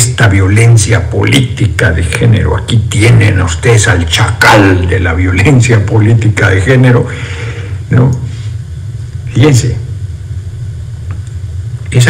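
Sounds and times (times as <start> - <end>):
man speaking: 0.0 - 7.2, 7.9 - 8.4, 9.3 - 9.9
steady low rumble: 0.0 - 12.0.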